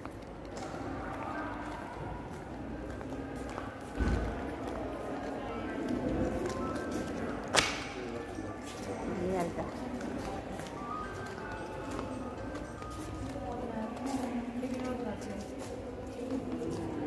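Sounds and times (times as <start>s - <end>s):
faint music: 0.0s - 17.0s
indistinct echoing voices: 0.0s - 17.0s.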